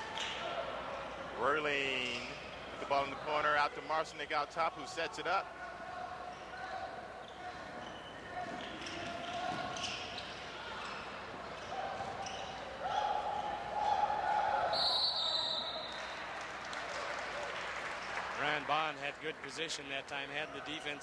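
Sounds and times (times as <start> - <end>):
sneakers squeaking: 6.2 - 14.0
referee whistle blast: 14.7 - 16.1.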